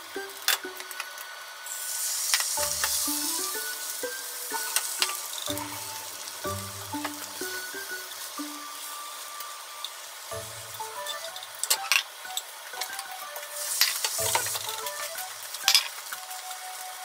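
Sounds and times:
egg sizzling in a pan: 0.0s - 17.0s.

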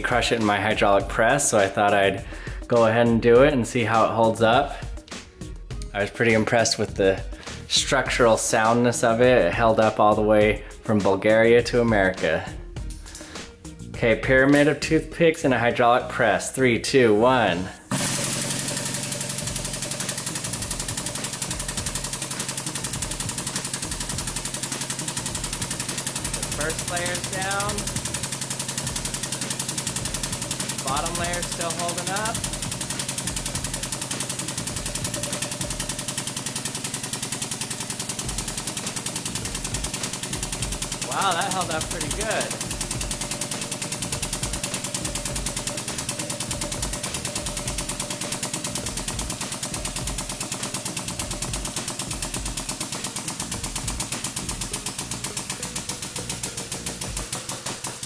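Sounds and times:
hydraulic press pump pulsing: 17.7s - 58.0s
rapid even clicking: 17.9s - 58.0s.

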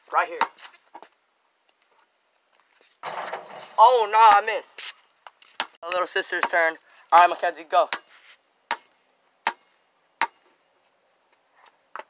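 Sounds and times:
basketball bouncing: 5.6s - 5.8s.

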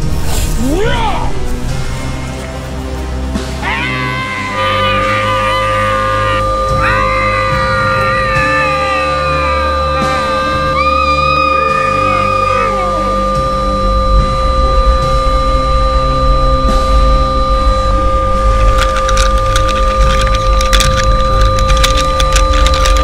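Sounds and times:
background music: 0.0s - 23.0s
high-pitched screaming: 3.6s - 14.0s
steady high tone: 4.0s - 23.0s.

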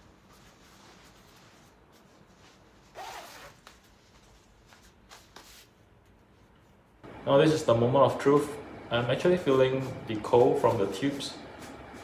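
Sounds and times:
fabric rustling: 0.0s - 7.0s
zipper rasp: 2.8s - 3.8s.

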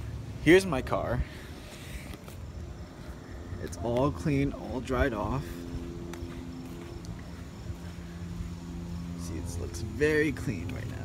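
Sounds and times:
steady low hum: 0.0s - 11.0s
footsteps on asphalt: 0.8s - 11.0s.

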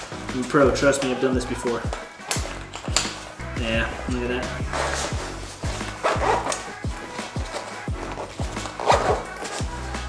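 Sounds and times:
music with deep beat: 0.0s - 10.0s.

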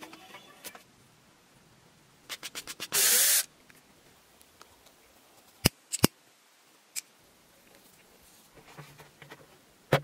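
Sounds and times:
cordless drill boring wood: 2.9s - 3.4s.

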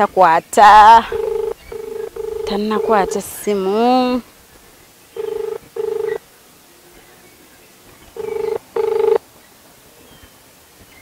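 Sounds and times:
phone ringback tone: 1.0s - 3.5s, 5.2s - 6.2s, 8.2s - 9.2s.

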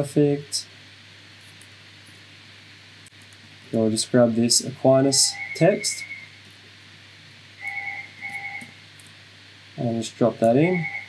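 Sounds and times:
telephone ringing: 7.6s - 8.7s, 10.8s - 11.0s.

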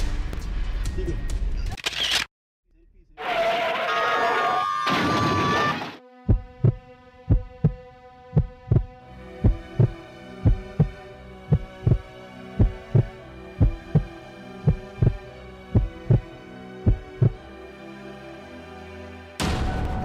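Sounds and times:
dramatic soundtrack: 5.9s - 20.0s
heartbeat-style double thump: 6.3s - 7.8s, 8.4s - 12.0s, 12.6s - 14.1s, 14.7s - 15.2s, 15.8s - 16.3s, 16.9s - 17.4s.

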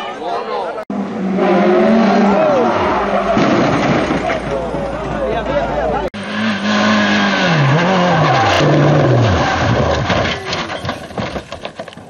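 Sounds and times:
racing engine revving: 0.9s - 10.4s
rally car engine: 0.9s - 11.4s
tyres skidding: 0.9s - 12.0s
car knocking as it rolls over: 8.7s - 12.0s.

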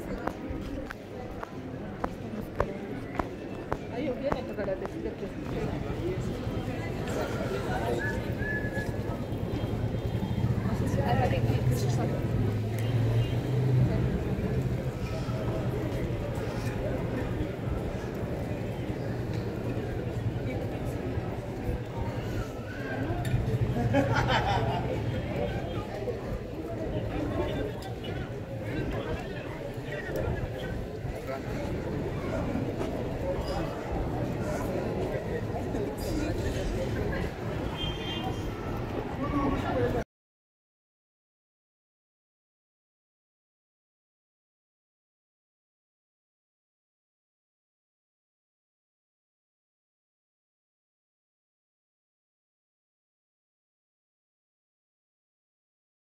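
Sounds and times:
street crowd chatter: 0.0s - 40.1s.

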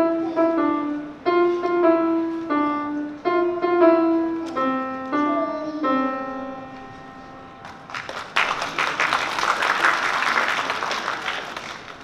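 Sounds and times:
grand piano note ringing: 0.0s - 8.0s
audience clapping: 7.6s - 12.0s.

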